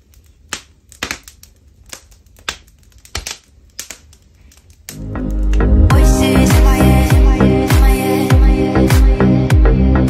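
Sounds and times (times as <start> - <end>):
wood fire crackling: 0.0 - 8.0.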